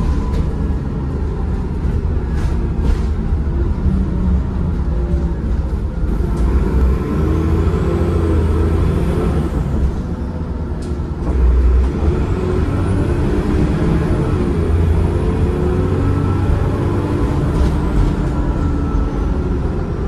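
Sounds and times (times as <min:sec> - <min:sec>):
bus diesel engine running: 0:00.0 - 0:20.0.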